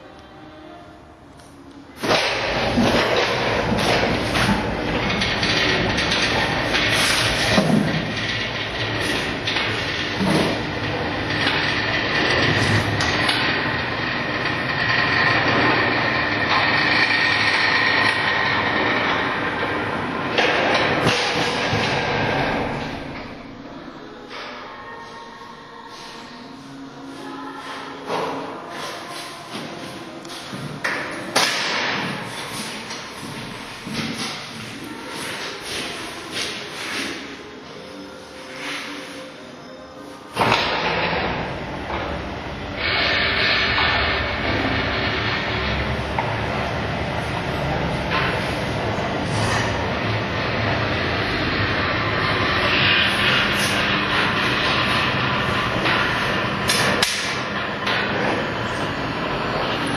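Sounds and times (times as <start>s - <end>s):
garage door rattling rumble: 2.0s - 23.7s, 40.4s - 59.9s.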